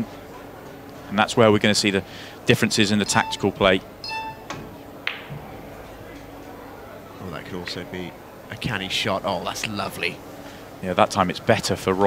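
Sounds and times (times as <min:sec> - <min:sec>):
short high tone: 0:03.0 - 0:04.5
ball striking ball click: 0:04.2 - 0:05.3
cue striking cue ball: 0:04.2 - 0:05.5.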